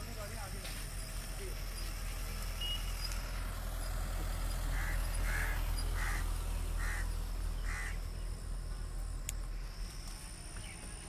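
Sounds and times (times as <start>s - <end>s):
rumble of slow vehicles: 0.0s - 11.0s
bird harsh calls: 4.4s - 8.4s.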